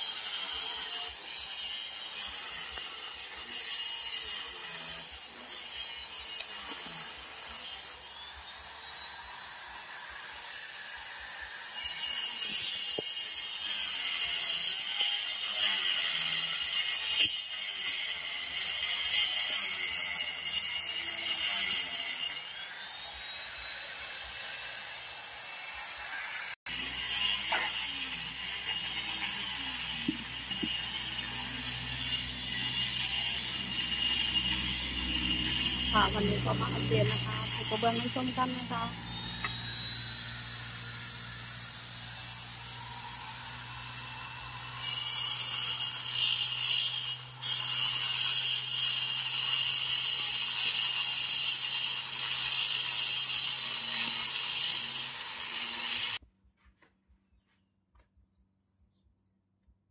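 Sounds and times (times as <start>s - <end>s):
electric grinder cutting tile: 0.0s - 56.2s.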